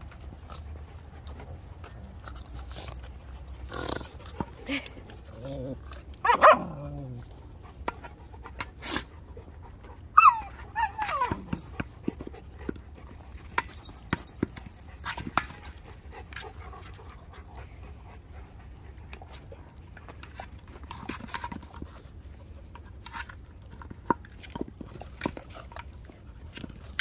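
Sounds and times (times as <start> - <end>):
dog whining: 3.6 - 7.4, 10.0 - 11.8.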